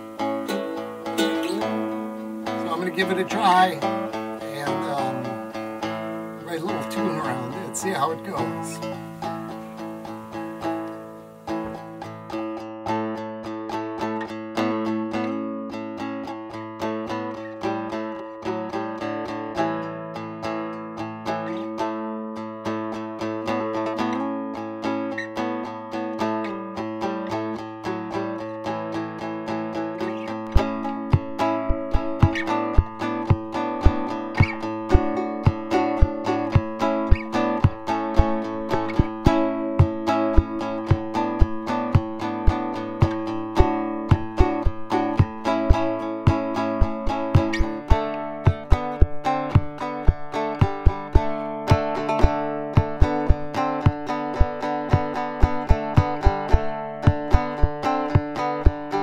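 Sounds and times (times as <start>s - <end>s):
plucked guitar lead notes: 0.0s - 59.0s.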